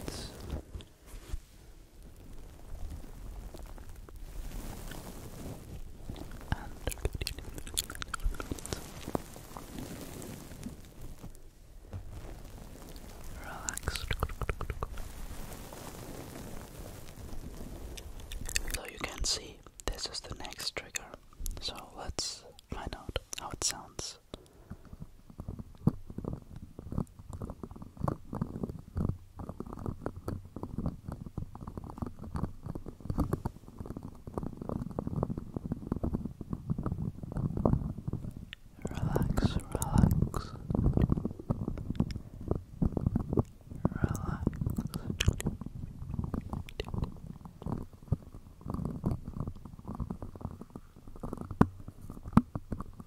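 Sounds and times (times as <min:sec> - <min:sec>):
breathy whispering: 0:00.0 - 0:00.8, 0:06.1 - 0:10.0, 0:13.0 - 0:15.4, 0:18.0 - 0:25.1, 0:38.5 - 0:42.6, 0:43.4 - 0:52.4
fingers scratching and tapping microphone: 0:02.1 - 0:53.0
mouth clicks: 0:06.2 - 0:09.2, 0:13.0 - 0:15.2, 0:18.0 - 0:24.5, 0:38.1 - 0:53.0.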